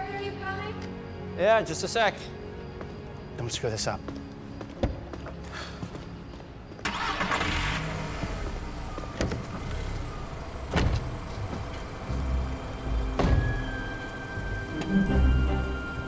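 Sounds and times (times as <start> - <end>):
car engine rumbling: 6.9 - 16.0.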